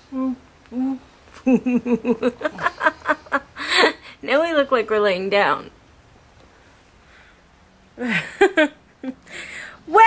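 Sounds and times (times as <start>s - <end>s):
laughter: 1.4s - 4.0s, 8.0s - 9.2s.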